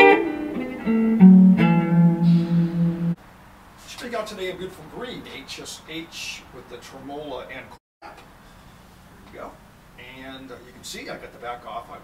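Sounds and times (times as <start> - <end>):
electric guitar low note ringing: 0.0 - 3.2.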